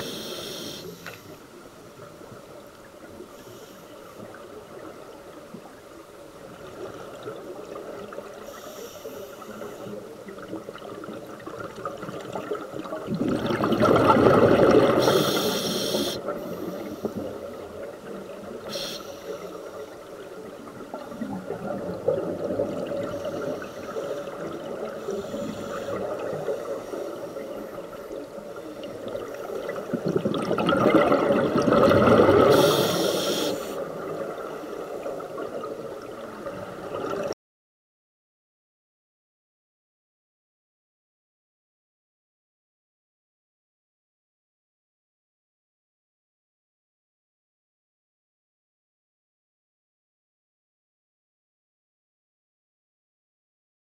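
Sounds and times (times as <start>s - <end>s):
diver breathing through regulator: 0.0s - 1.3s, 14.9s - 17.2s, 18.7s - 19.6s, 25.0s - 27.3s, 32.4s - 33.8s
surges of exhaled bubbles: 10.8s - 15.2s, 20.9s - 23.6s, 28.9s - 32.9s.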